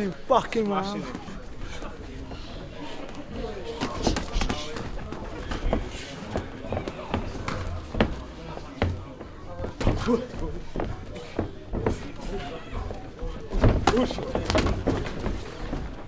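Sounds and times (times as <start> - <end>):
gloves and kicks thudding: 13.5 - 15.9.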